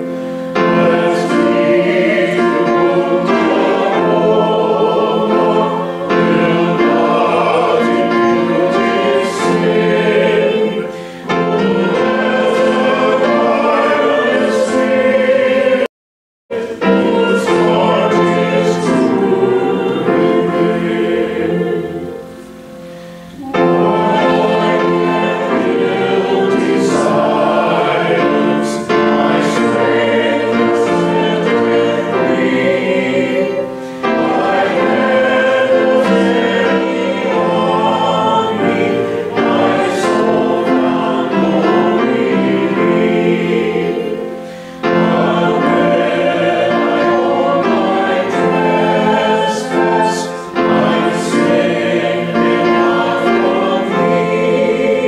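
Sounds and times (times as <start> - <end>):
congregation singing a hymn: 0.0 - 15.9, 16.5 - 55.0.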